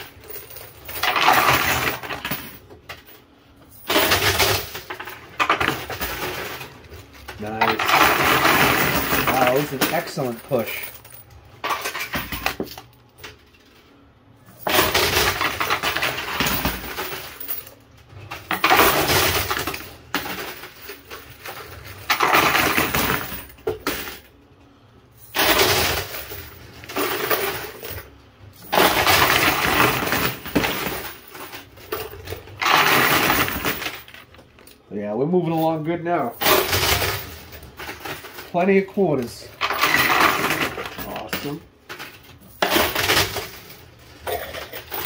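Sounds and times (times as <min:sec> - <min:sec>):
coins and chips clattering down: 0:00.0 - 0:13.4, 0:14.5 - 0:24.3, 0:25.2 - 0:34.3, 0:35.5 - 0:45.0.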